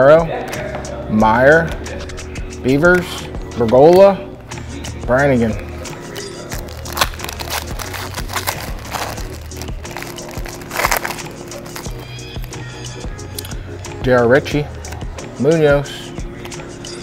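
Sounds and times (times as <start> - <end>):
background music with steady beat: 0.0 - 17.0
foil wrapper crinkling and tearing: 6.0 - 12.6.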